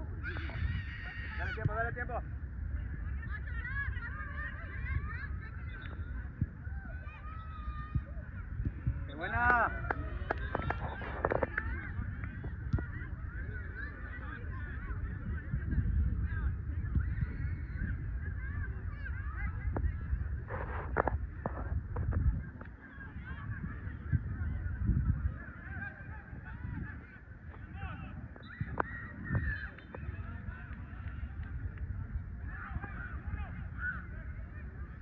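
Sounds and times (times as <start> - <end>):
wind rumble on microphone: 0.0 - 35.0.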